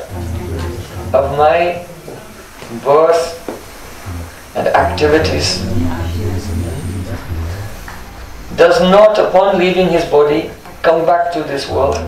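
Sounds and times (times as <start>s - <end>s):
low rumbling hum: 0.0s - 10.8s.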